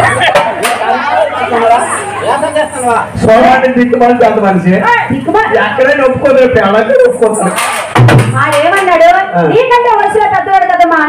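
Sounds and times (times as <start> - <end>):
people talking over loudspeaker: 0.0 - 11.0.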